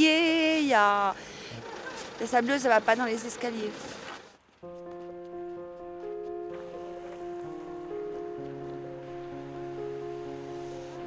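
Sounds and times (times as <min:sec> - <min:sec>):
soft held chords: 0:04.6 - 0:11.0.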